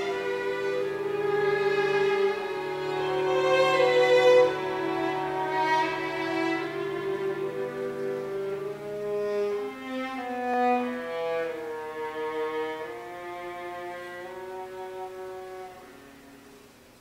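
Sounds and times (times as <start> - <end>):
string quartet playing slow notes: 0.0 - 17.0.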